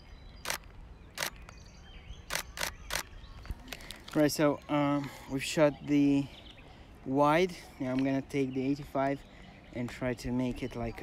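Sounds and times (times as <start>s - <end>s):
faint outdoor background noise: 0.0s - 11.0s
camera shutter clicking: 0.4s - 1.5s, 2.3s - 3.1s.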